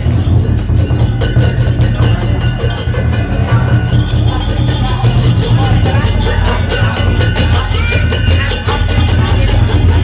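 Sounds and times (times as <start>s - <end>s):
big drum beating: 0.0s - 10.0s
cymbals clashing: 0.0s - 10.0s.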